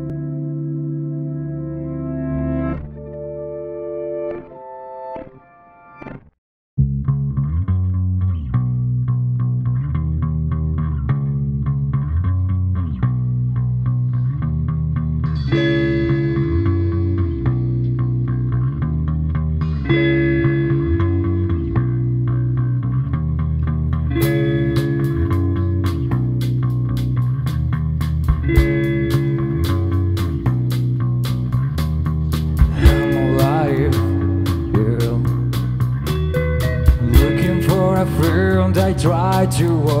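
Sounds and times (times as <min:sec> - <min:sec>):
electric bass riff: 0:00.0 - 0:04.6, 0:06.0 - 0:40.0
electric guitar: 0:00.0 - 0:06.3, 0:07.3 - 0:40.0.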